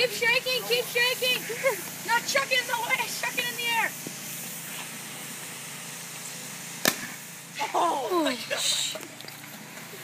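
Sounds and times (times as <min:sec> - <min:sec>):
water bottle bursting bang: 0:06.8 - 0:07.2.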